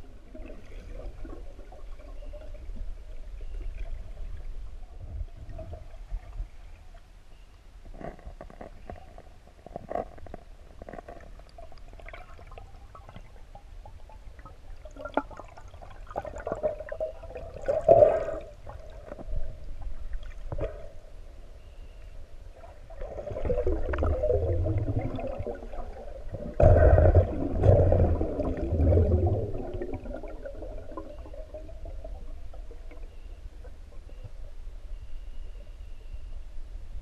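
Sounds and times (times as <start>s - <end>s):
underwater rumble: 0.0s - 37.0s
small clicks and crackles: 6.9s - 14.0s
water gurgling: 7.9s - 21.0s, 22.6s - 34.7s
muffled underwater gurgling: 22.6s - 36.4s.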